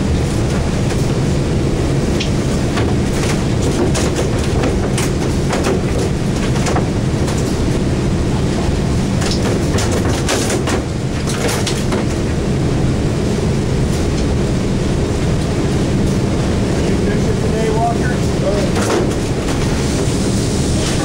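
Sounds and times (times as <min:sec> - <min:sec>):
boat engine idling: 0:00.0 - 0:21.0.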